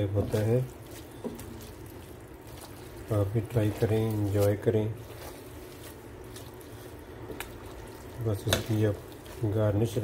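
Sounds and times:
sauce simmering in pot: 0.0 - 10.0
spatula stirring ticks: 0.0 - 10.0.

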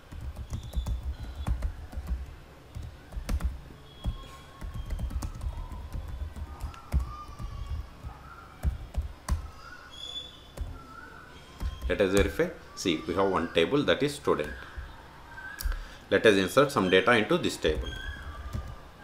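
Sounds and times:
keyboard typing clicks: 0.0 - 9.5.

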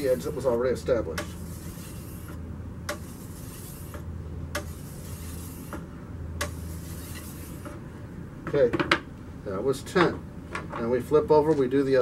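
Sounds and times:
blade scraping on whetstone: 1.2 - 5.8, 6.4 - 7.8.

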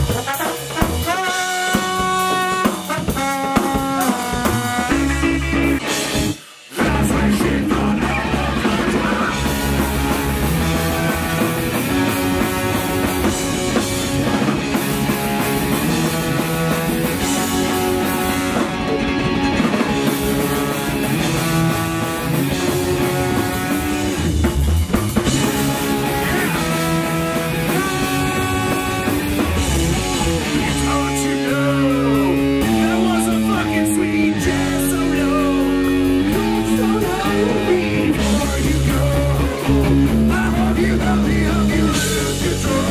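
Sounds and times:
trombone playing held notes: 0.0 - 5.8, 20.1 - 24.2, 25.6 - 30.1
ska punk band playing: 0.0 - 42.9.

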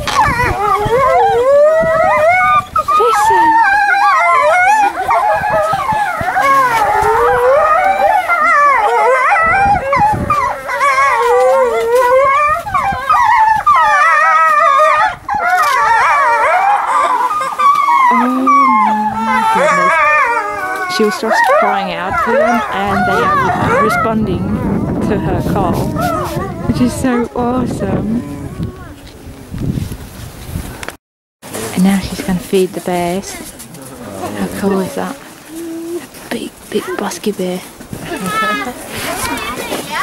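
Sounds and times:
wolves howling in chorus: 0.0 - 29.0, 33.1 - 36.2.

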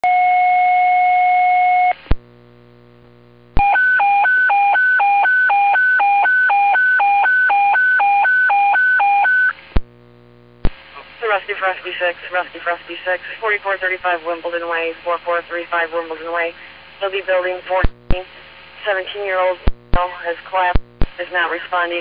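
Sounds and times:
radio click: 9.6 - 9.9, 10.6 - 11.1, 17.7 - 18.3, 19.6 - 21.3.

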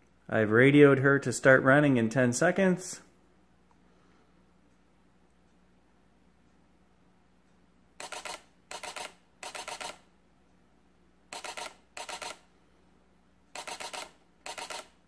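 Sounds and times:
camera shutter clicking in bursts: 8.0 - 10.1, 11.3 - 12.5, 13.5 - 15.0.

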